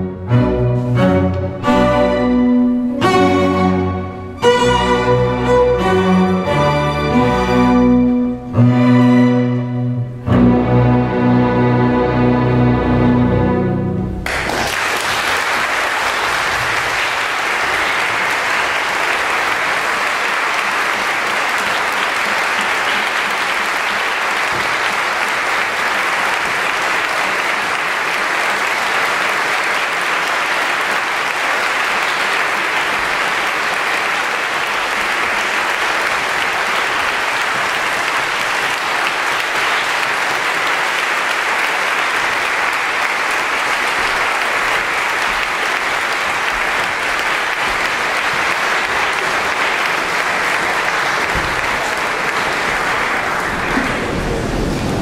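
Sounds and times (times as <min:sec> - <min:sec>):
audience applauding: 0:14.2 - 0:55.0.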